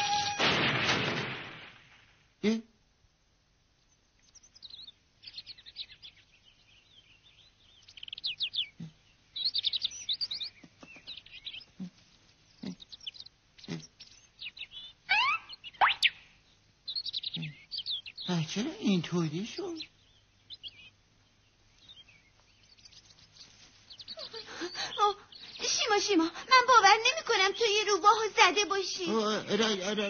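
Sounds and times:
high bird chirps and trills: 0:03.9 - 0:30.0.

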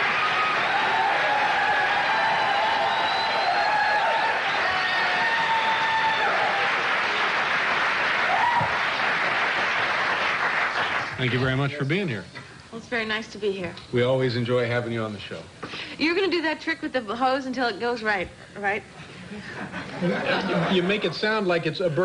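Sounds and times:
audience applauding: 0:00.0 - 0:11.7.

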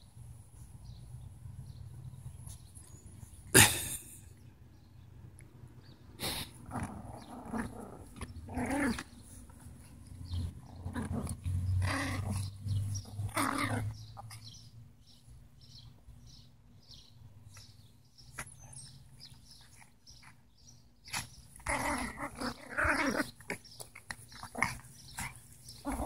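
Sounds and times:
dogs growling: 0:06.5 - 0:14.5, 0:21.1 - 0:26.0.

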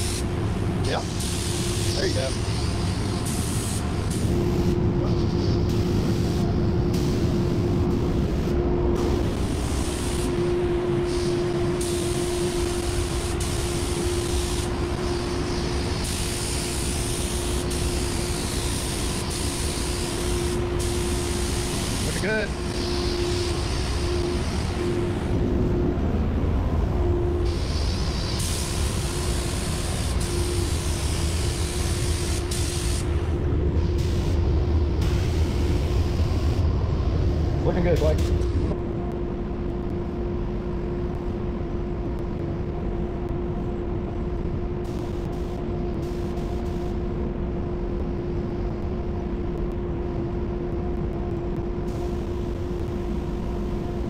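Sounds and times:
spray gun hissing in bursts: 0:00.0 - 0:25.3, 0:27.4 - 0:34.4, 0:35.0 - 0:36.6
steady hum and low rumble: 0:00.0 - 0:54.0.

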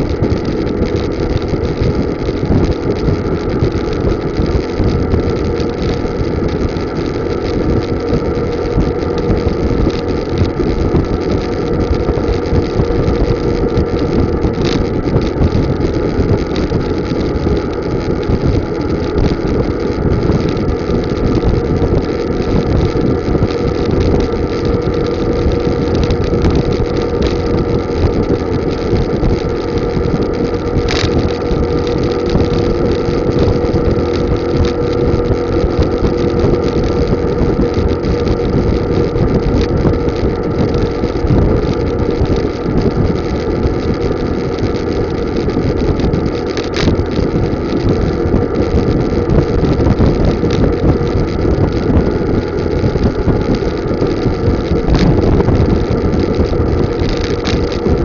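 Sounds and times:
road noise: 0:00.0 - 0:58.0
vehicle engine running: 0:00.0 - 0:58.0
wind noise on microphone: 0:00.0 - 0:58.0
sharp clicks: 0:23.5 - 0:42.6, 0:44.6 - 0:48.8, 0:56.9 - 0:58.0.

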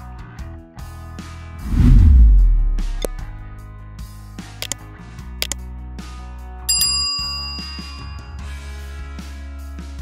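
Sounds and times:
notification bell ding: 0:06.7 - 0:08.4.

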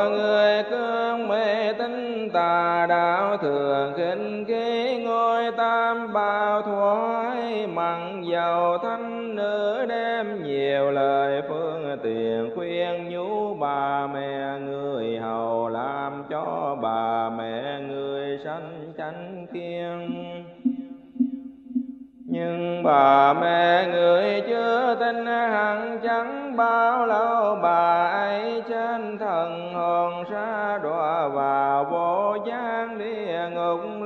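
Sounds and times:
person chanting: 0:00.0 - 0:34.0.

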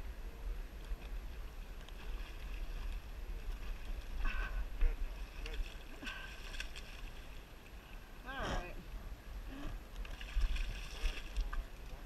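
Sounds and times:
shallow river water flowing: 0:00.0 - 0:12.0.

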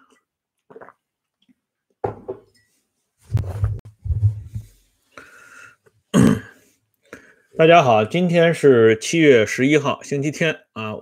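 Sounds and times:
man clearing his throat: 0:06.1 - 0:06.6.

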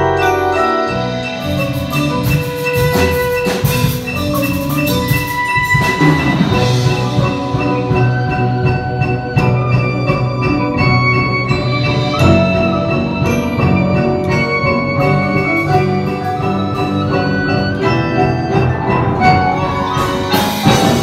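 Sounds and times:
drums and cymbals: 0:00.0 - 0:21.0
marimbas and vibraphones playing: 0:00.0 - 0:21.0.

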